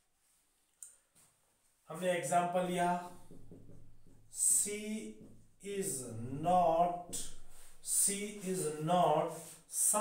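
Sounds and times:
man's voice: 1.9s - 3.2s, 4.3s - 10.0s.

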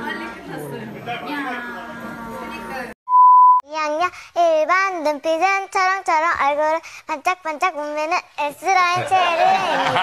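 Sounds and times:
chatter in a hall: 0.0s - 3.0s.

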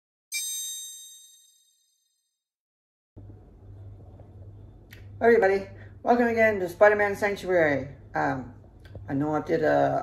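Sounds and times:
high-pitched chime ding: 0.3s - 2.0s.

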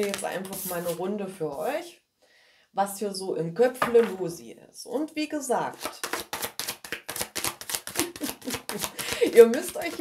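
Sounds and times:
cards being shuffled: 0.0s - 1.0s, 5.8s - 10.0s.

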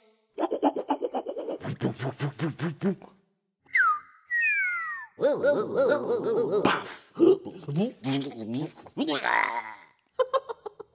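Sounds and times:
cartoon falling whistles: 3.7s - 5.2s.

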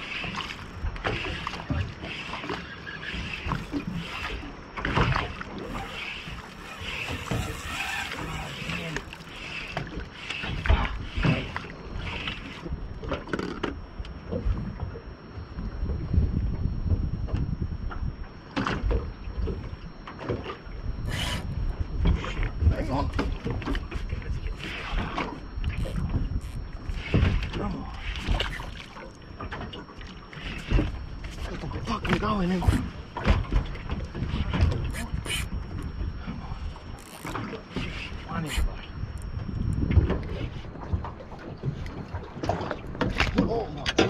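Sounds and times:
low boat rumble: 0.0s - 44.0s
fishing reel clicks and knocks: 5.6s - 12.6s
wind buffeting microphone: 30.7s - 44.0s.

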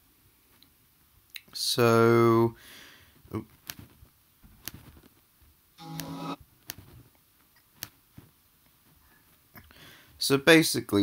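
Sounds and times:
held musical chord: 5.8s - 6.4s.

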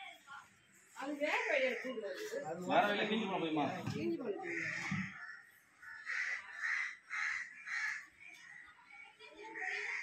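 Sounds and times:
crow cawing: 1.3s - 2.4s, 4.3s - 8.2s, 9.4s - 10.0s.

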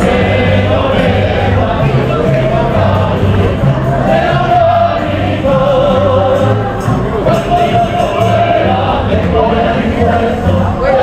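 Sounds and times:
low bass line: 0.0s - 11.0s
procession singing in chorus: 0.0s - 11.0s.

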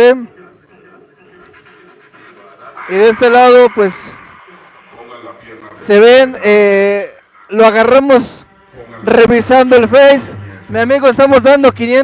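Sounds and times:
man talking: 0.0s - 1.5s, 2.6s - 12.0s.

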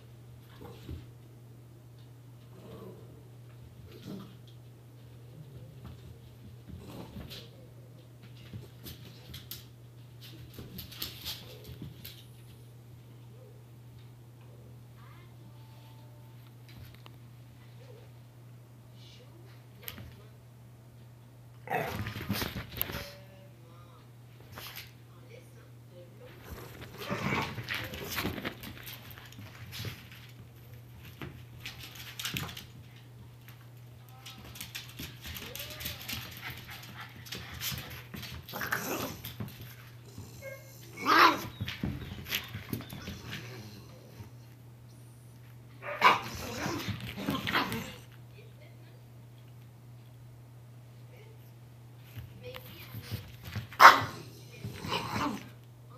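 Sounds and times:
small dogs growling and yapping: 2.4s - 4.4s, 21.6s - 22.5s, 26.4s - 28.3s, 38.4s - 41.9s, 42.7s - 44.4s, 45.8s - 48.2s, 53.8s - 55.6s
dogs scuffling: 3.6s - 12.7s, 26.3s - 44.6s, 52.0s - 55.6s
small dogs barking: 40.8s - 41.6s, 45.8s - 46.7s, 53.8s - 55.4s
dog barking: 45.8s - 46.4s, 53.8s - 54.2s.

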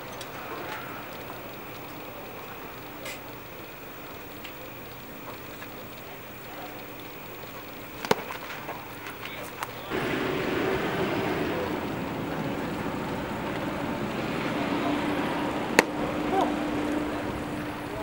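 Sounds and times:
distant voices: 0.0s - 18.0s
faint low hum: 0.0s - 18.0s
sharp crack: 9.9s - 18.0s.

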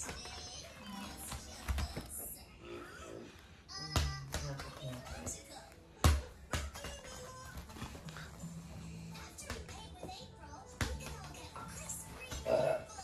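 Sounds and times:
rubber ball bouncing on foam mat: 0.0s - 2.3s, 3.8s - 5.4s, 6.0s - 8.3s, 9.3s - 12.6s.

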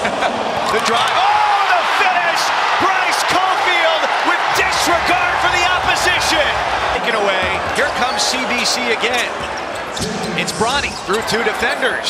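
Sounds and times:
crowd noise: 0.0s - 12.0s
basketball bouncing: 4.4s - 11.4s
sneakers squeaking on hardwood: 4.9s - 11.5s.

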